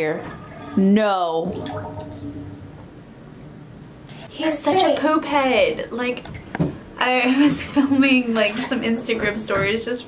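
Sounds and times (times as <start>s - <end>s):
low steady background hiss: 0.0s - 10.0s.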